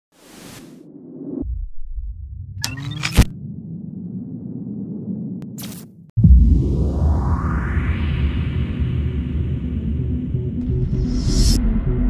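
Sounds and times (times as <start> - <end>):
low rumble: 0.9 - 5.5, 6.2 - 12.0.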